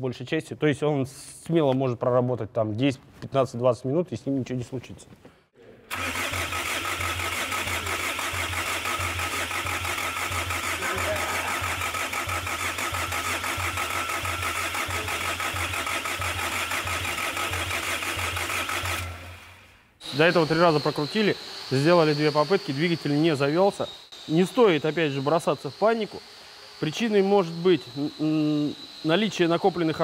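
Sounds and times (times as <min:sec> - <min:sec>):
starter cranking diesel engine: 0:05.9 - 0:19.6.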